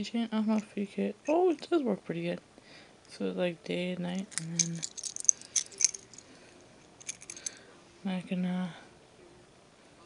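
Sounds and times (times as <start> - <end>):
metal keychain clicking and jingling: 4.2 - 6.3, 6.9 - 7.6.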